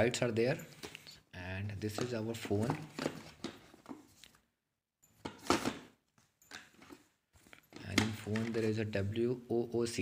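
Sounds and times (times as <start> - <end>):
smartphone box rustling and scraping: 1.8 - 4.4, 5.2 - 9.2.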